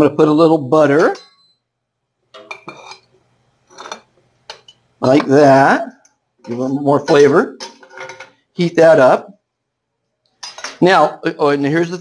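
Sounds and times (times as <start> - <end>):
knife clinking against dish: 10.4 - 10.8.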